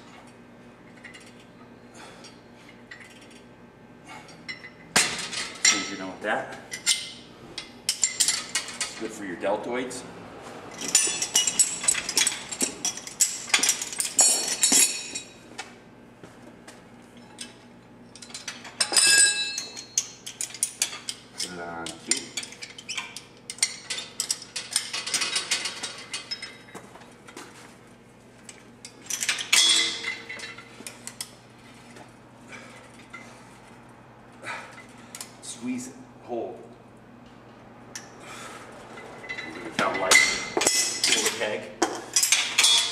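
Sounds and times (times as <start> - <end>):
metal clinking: 10.7 - 15.4, 18.2 - 26.8, 28.5 - 31.3, 39.0 - 42.9.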